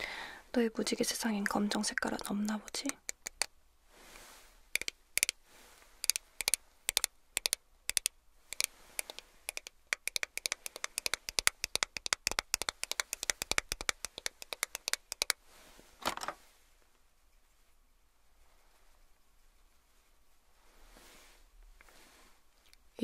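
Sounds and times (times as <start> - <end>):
fingernails tapping on plastic: 2.7 - 3.5, 6.1 - 15.4.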